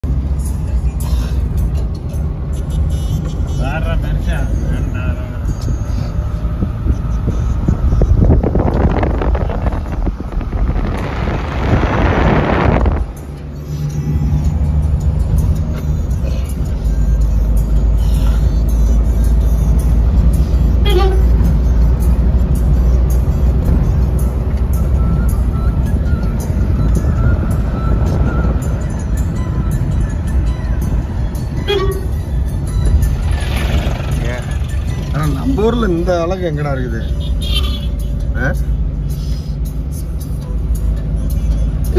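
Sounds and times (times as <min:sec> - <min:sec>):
road noise: 0:00.0 - 0:41.9
vehicle engine rumble: 0:00.0 - 0:41.9
wind buffeting microphone: 0:06.4 - 0:13.2.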